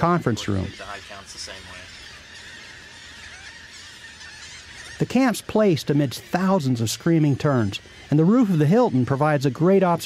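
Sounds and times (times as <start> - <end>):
faint voices talking: 0.0 - 10.0
terns calling: 0.0 - 10.0.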